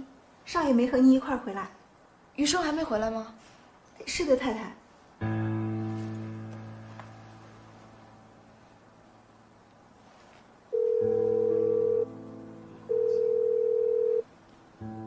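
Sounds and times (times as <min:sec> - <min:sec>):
soft piano music: 0:05.2 - 0:15.0
phone ringback beeps: 0:10.7 - 0:12.1, 0:12.9 - 0:14.2.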